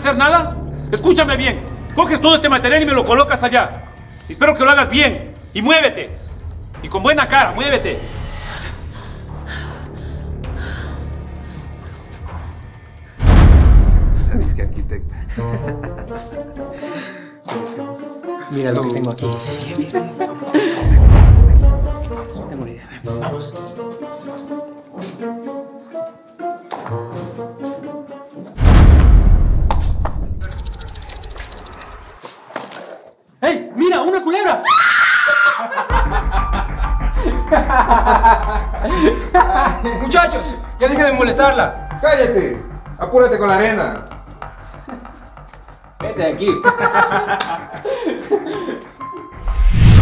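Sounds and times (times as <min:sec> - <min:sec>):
quiet background music: 0:00.0 - 0:13.2, 0:21.5 - 0:28.6, 0:35.9 - 0:49.7
fast even rattle: 0:18.5 - 0:19.9, 0:30.4 - 0:31.9
dramatic boom with low rumble: 0:20.9 - 0:22.0.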